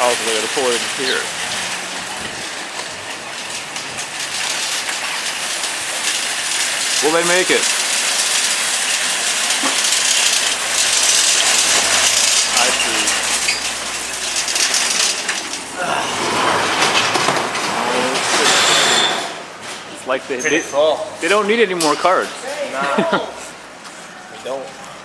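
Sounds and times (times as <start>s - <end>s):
shopping carts rattling over pavement: 0.0s - 23.0s.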